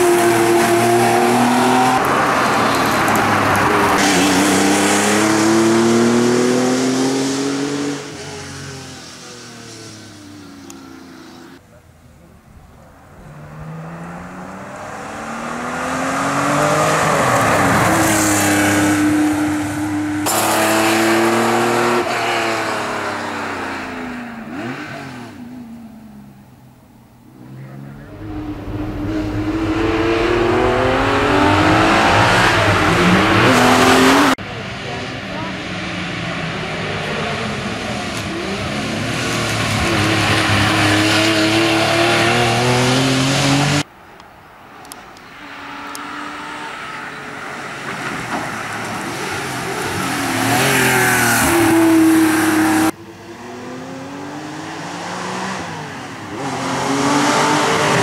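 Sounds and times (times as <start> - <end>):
car engine racing uphill: 0.0 - 58.0.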